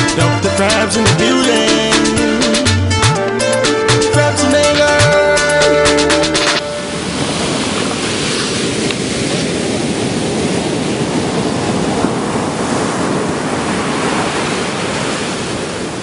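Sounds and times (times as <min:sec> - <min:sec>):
ocean surf breaking on beach: 0:04.6 - 0:16.0.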